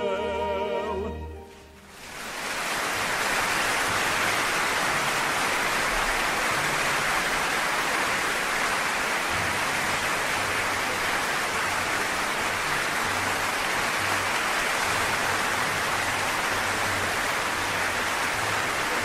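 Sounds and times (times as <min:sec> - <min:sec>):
audience applauding: 0:01.8 - 0:19.0.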